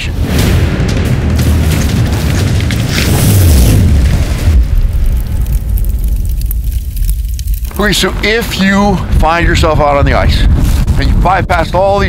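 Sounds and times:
deep booming rumble: 0.0 - 12.0.

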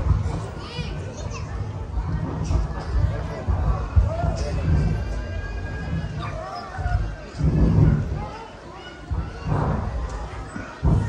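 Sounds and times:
children's voices and chatter: 0.0 - 11.0.

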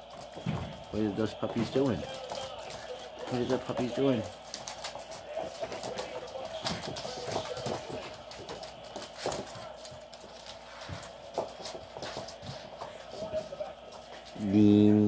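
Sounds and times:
dog claws clicking on wood floor: 0.1 - 14.4.

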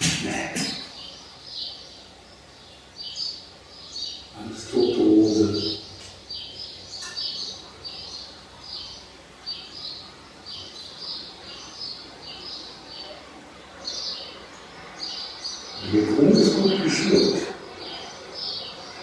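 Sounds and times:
small bird chirping: 0.7 - 19.0.

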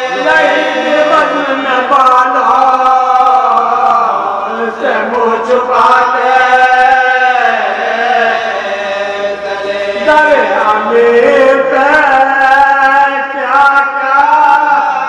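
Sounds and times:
man singing into a microphone: 0.0 - 15.0
men chanting: 0.0 - 15.0.

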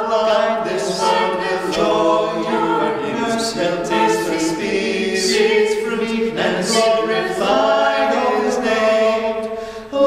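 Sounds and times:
a cappella choir singing: 0.0 - 10.0.

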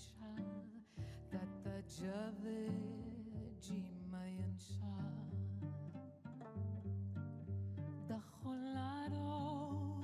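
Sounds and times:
cello played pizzicato: 0.0 - 10.0.

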